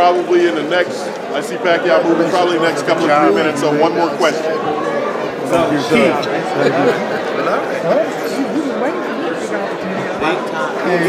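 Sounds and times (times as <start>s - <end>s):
indistinct chatter: 0.0s - 11.0s.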